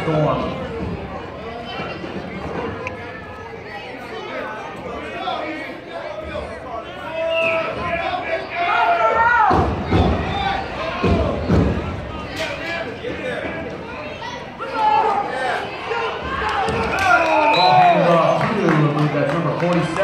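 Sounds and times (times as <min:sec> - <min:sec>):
voices shouting and calling out: 0:00.0 - 0:20.0.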